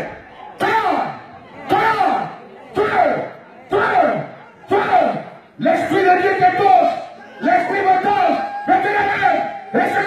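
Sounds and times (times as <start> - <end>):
crowd: 0.0 - 10.0
voices crying out: 0.0 - 10.0.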